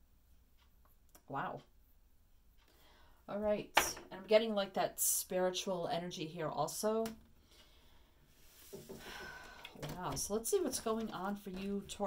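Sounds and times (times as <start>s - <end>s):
person speaking: 9.8s - 12.0s.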